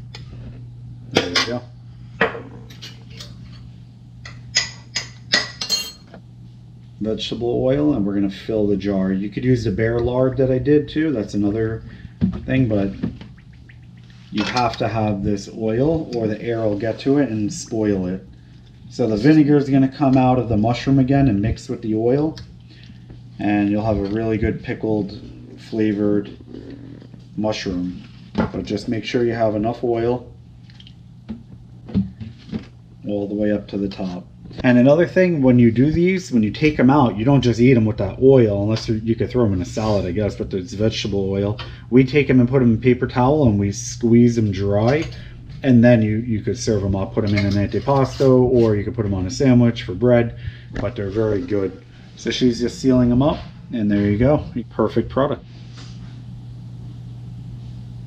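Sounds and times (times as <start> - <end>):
steady low hum: 0.0 - 58.0
glass and metal clinking: 4.6 - 6.2.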